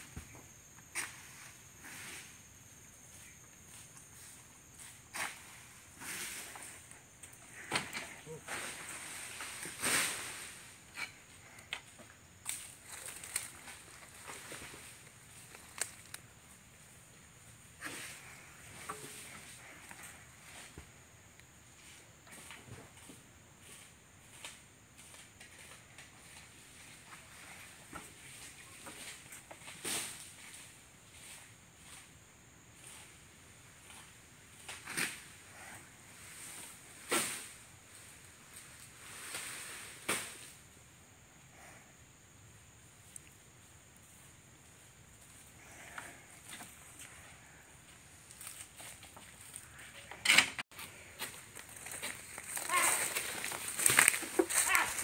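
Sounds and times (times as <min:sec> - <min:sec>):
footsteps through dry leaves: 0:51.0 - 0:55.0.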